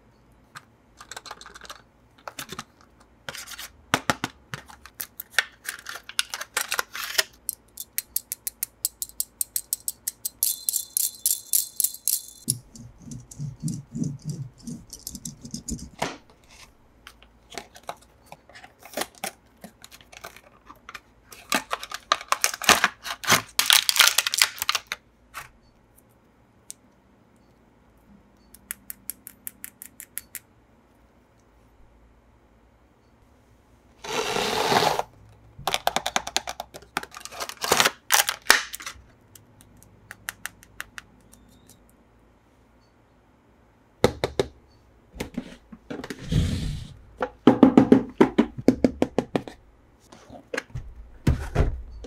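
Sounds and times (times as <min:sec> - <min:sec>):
toy packaging clicks and crackles: 0:04.6 - 0:10.7, 0:17.5 - 0:25.0, 0:35.7 - 0:39.9.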